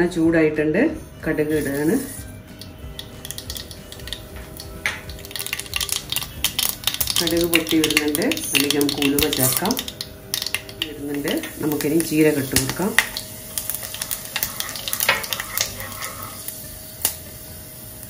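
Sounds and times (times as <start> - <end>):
seeds popping in hot oil: 1.6 - 18.0.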